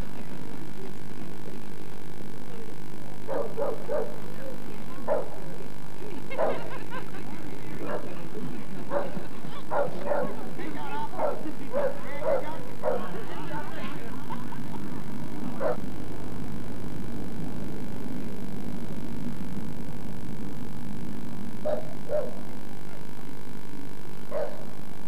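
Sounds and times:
dog barking: 3.3 - 4.3, 5.1 - 5.4, 6.3 - 6.8, 7.8 - 8.2, 8.9 - 10.4, 11.2 - 13.1, 15.6 - 15.8, 21.6 - 22.4, 24.3 - 24.7.

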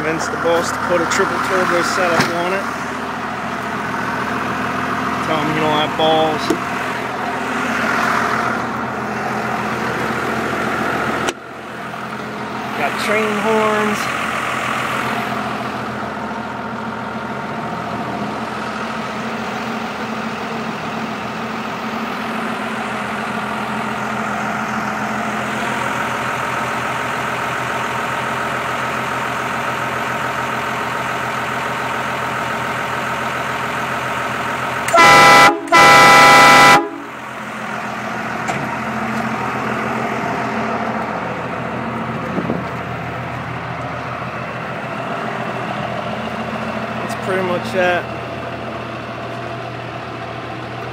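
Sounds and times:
diesel engine idling: 0.0 - 50.9
train horn blasts: 34.9 - 37.1.

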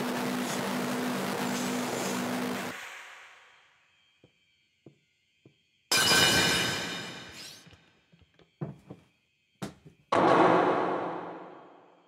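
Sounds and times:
pulsing low hum: 0.0 - 2.8.

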